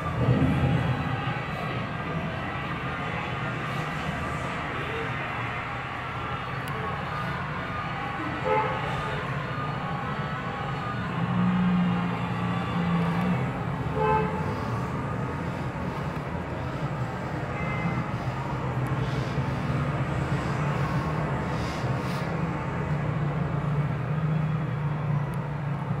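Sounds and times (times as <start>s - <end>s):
horn-like tone: 8.4s - 9.2s, 13.9s - 14.5s.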